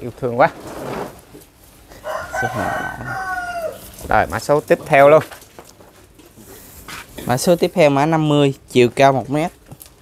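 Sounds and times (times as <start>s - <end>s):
rooster crowing: 1.9s - 4.0s.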